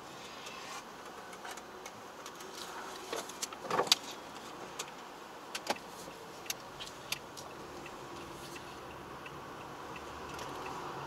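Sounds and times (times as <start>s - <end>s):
car running quietly: 0.0s - 11.0s.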